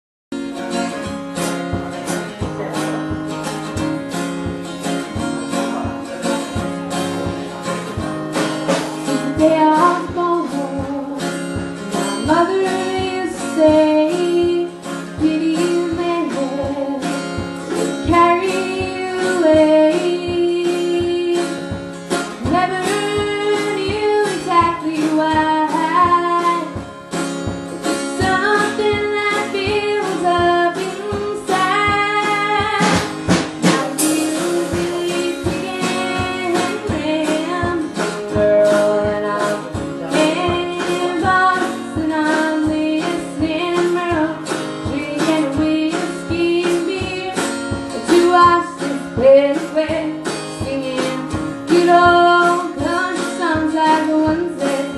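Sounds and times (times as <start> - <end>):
acoustic guitar strumming: 0.3 - 54.9
drum kit beat: 0.3 - 54.9
woman singing: 9.0 - 27.0, 27.9 - 54.9.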